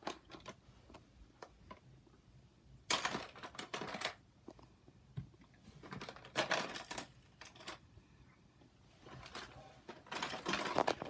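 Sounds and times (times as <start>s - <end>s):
quick clicks and rustles: 9.0s - 11.0s.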